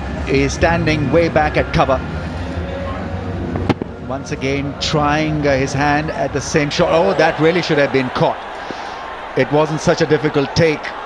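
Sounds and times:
stadium crowd murmur: 0:00.0 - 0:11.0
cricket bat striking ball: 0:03.6 - 0:04.0.

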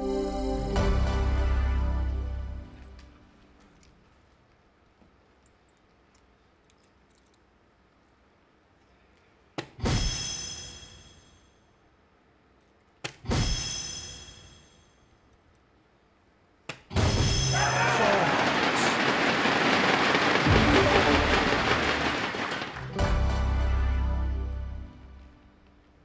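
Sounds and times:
crowd noise: 0:17.6 - 0:23.7.

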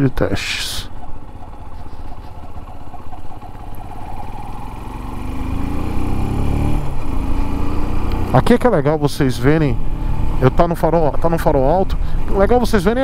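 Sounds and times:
motorcycle engine accelerating: 0:00.0 - 0:13.0.

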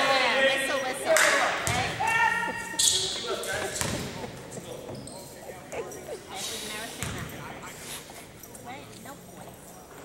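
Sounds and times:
faint voices in gymnasium: 0:00.0 - 0:10.0.

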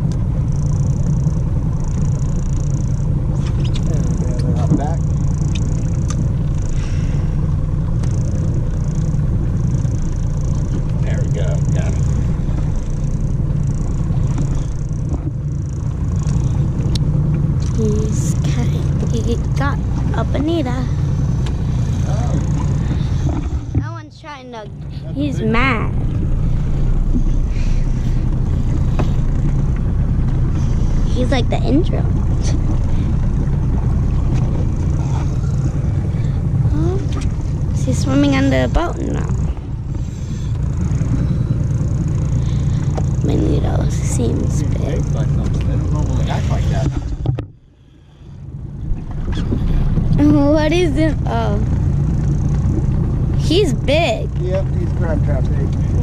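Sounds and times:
boat engine low rumble: 0:00.0 - 0:56.0.

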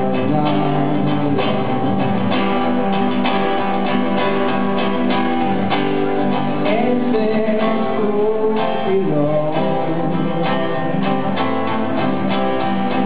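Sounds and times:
acoustic guitar strummed: 0:00.0 - 0:13.0.

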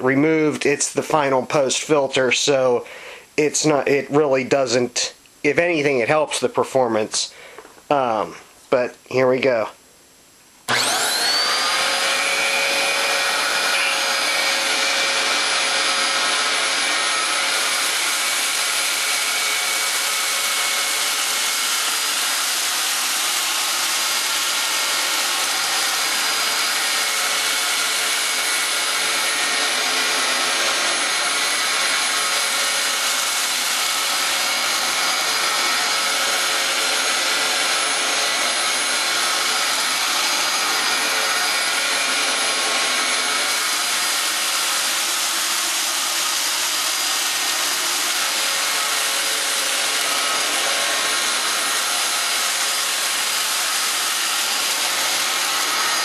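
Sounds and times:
vacuum cleaner whining: 0:10.7 - 0:56.0.

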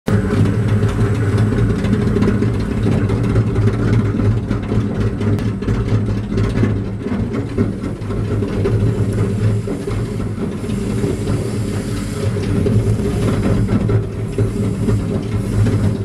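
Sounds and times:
paper shredder motor hum: 0:07.2 - 0:16.0.

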